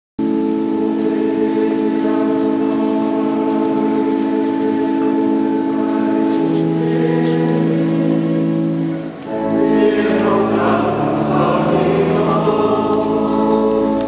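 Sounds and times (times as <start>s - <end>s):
organ sustained chord: 0.2s - 14.0s.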